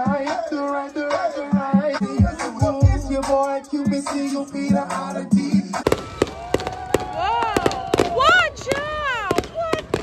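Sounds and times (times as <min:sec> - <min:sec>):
hip-hop dance music: 0:00.0 - 0:06.7
fireworks bangs and crackles: 0:05.7 - 0:10.0.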